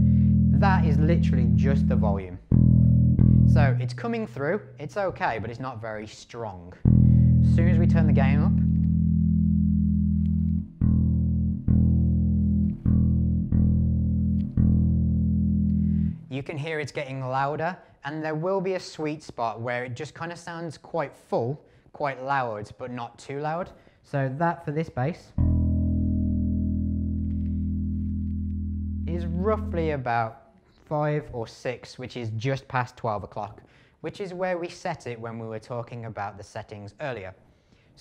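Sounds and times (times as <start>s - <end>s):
electric bass note ringing: 0.0s - 4.0s, 6.9s - 16.3s, 25.4s - 30.0s
bass note plucked: 0.0s - 4.2s, 6.8s - 16.3s, 25.4s - 30.0s.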